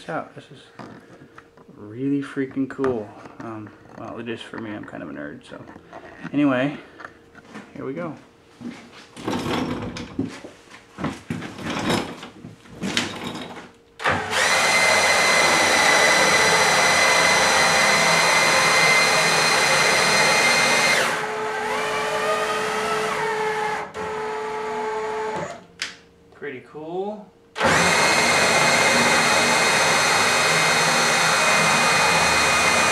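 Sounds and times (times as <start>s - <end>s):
cordless drill whining: 14.0s - 25.7s, 27.6s - 32.9s.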